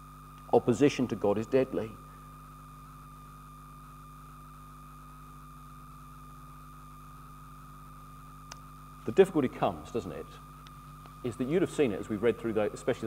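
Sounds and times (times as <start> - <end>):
faint electrical hum: 0.0 - 13.0
thin high whine: 0.0 - 13.0
small click: 8.4 - 8.7.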